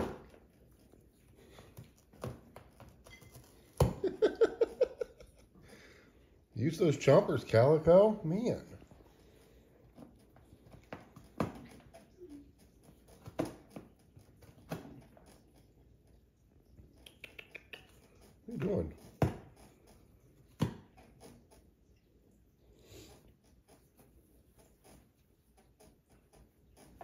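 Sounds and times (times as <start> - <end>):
cat gnawing cardboard box: 0.0 - 5.6, 8.8 - 27.0.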